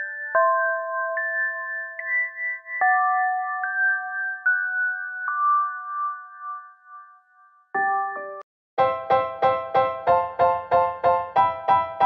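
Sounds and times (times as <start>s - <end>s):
chime-like jingle chord: 0.0s - 8.5s.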